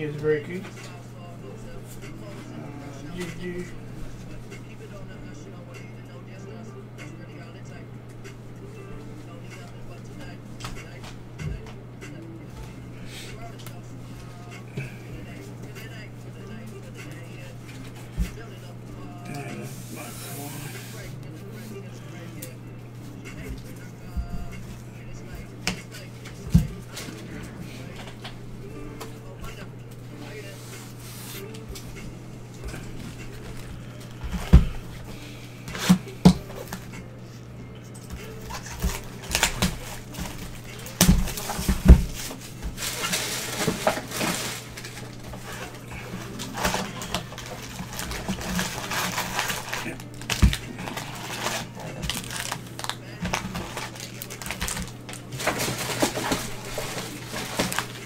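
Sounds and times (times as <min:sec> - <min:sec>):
steady low hum: 0:00.0 - 0:58.0
foil packs crinkling: 0:38.2 - 0:58.0.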